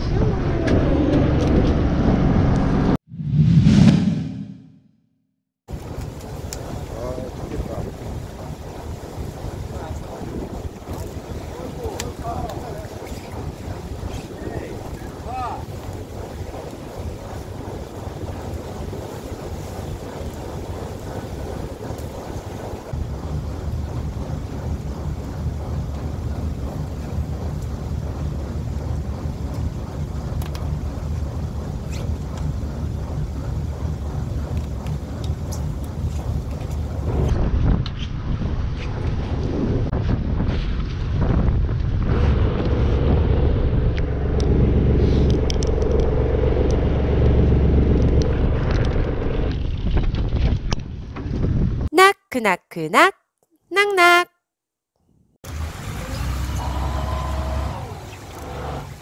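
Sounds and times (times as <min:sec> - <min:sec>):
boat engine humming: 0:05.7 - 0:37.6, 0:42.1 - 0:49.8, 0:55.4 - 0:59.0
wind on microphone: 0:05.7 - 0:51.9.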